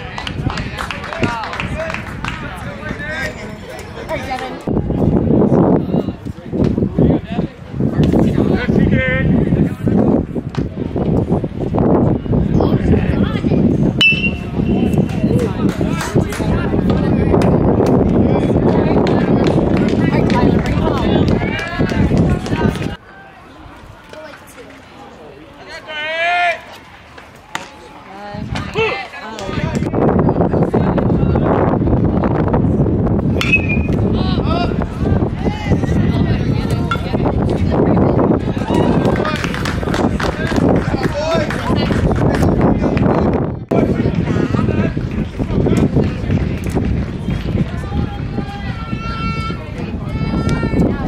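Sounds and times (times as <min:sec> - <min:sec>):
spectators shouting and chattering: 0:00.0 - 0:51.0
metal bat hitting ball: 0:33.4 - 0:33.9.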